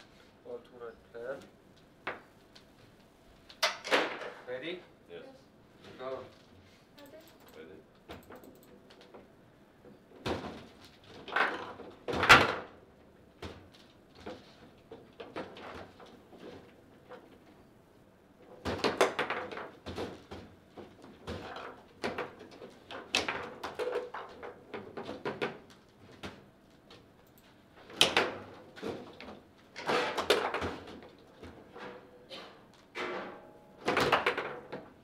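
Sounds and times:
foosball ball clacking: 0:33.0 - 0:35.0.

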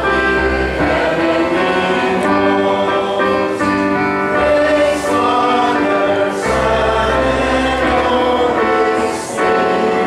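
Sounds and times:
congregation singing a hymn: 0:00.0 - 0:10.0
instrumental accompaniment: 0:00.0 - 0:10.0.

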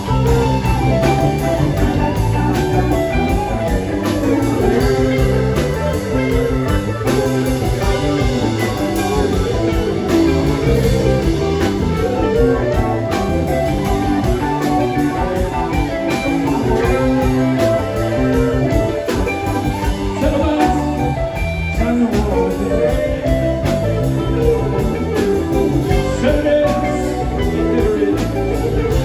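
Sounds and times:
bass guitar: 0:00.0 - 0:29.0
drum kit: 0:00.0 - 0:29.0
electric guitars: 0:00.0 - 0:29.0.

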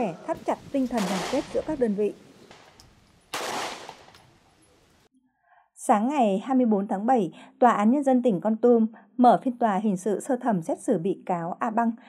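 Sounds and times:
pistol shot with echo: 0:01.0 - 0:01.8, 0:02.5 - 0:04.2.

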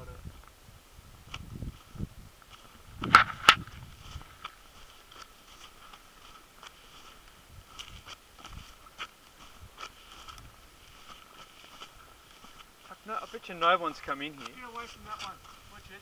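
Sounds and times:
footsteps crunching on ash: 0:01.2 - 0:16.0.

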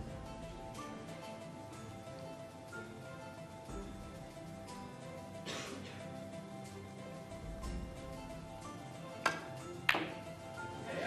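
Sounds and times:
soft background music: 0:00.0 - 0:11.0
snooker balls clicking: 0:09.2 - 0:10.4.

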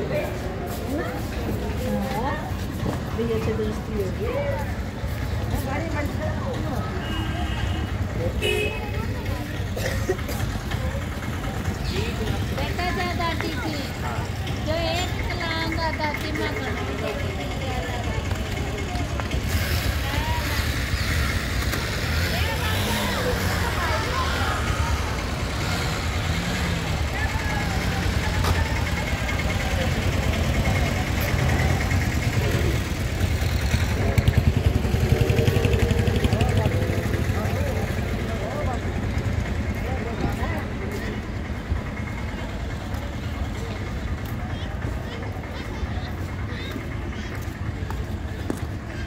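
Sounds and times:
low street rumble: 0:00.0 - 0:49.0
people talking: 0:00.0 - 0:49.0.

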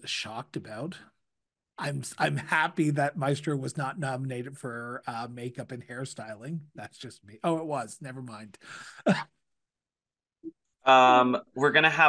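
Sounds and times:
man speaking: 0:00.0 - 0:01.1, 0:01.8 - 0:09.2, 0:10.9 - 0:12.0.

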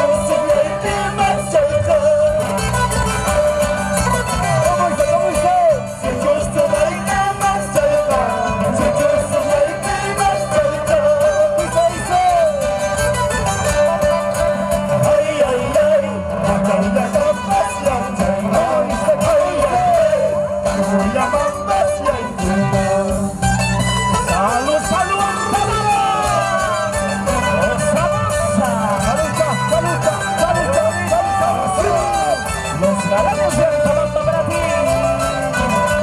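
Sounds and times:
person singing: 0:00.0 - 0:23.5, 0:24.2 - 0:36.0
strummed acoustic guitars: 0:00.0 - 0:36.0.

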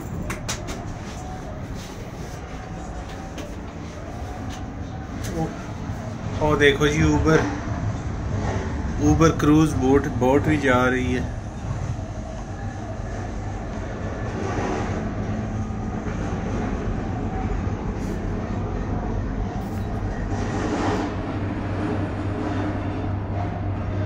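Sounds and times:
cable car rumble and hum: 0:00.0 - 0:24.0.

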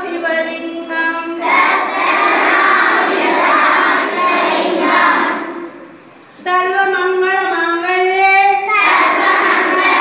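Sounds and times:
children chanting: 0:01.4 - 0:05.9, 0:08.6 - 0:10.0.

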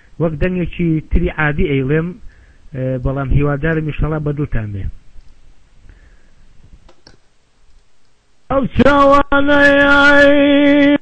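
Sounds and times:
low hum and hiss: 0:00.0 - 0:11.0
faint clicks: 0:05.2 - 0:06.0, 0:06.8 - 0:08.2.

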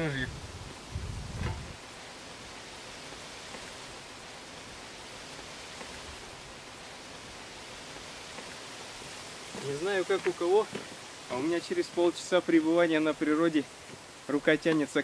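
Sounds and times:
outdoor hiss: 0:00.0 - 0:15.0.

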